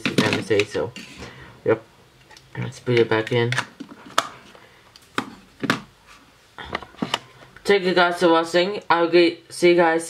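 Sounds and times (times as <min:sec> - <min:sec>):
plastic parts clicking into place: 0:02.2 - 0:04.4.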